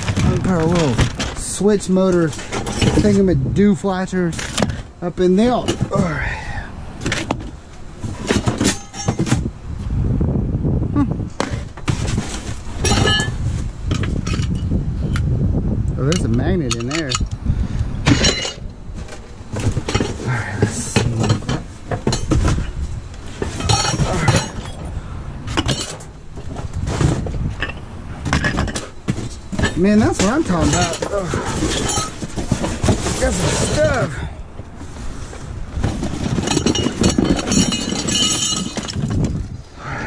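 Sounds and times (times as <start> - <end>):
metal parts clinking: 2.1 - 3.3, 8.2 - 9.4, 12.8 - 15.2, 16.0 - 17.4, 18.1 - 22.8, 23.4 - 24.9, 25.5 - 34.2, 36.0 - 39.4
cardboard scraping and rustling: 7.0 - 9.5, 11.4 - 13.8, 18.9 - 24.7, 25.6 - 27.6, 28.3 - 34.1, 34.8 - 37.9
person humming or muttering: 10.9 - 11.3.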